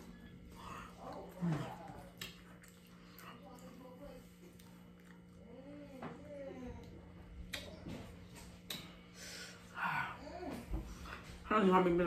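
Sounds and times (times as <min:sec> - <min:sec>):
person eating: 0:00.0 - 0:10.4.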